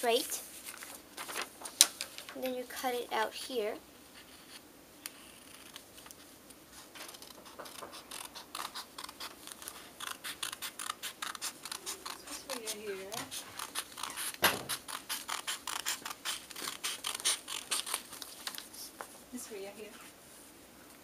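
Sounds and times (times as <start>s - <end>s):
scissors snipping paper: 6.9s - 18.7s.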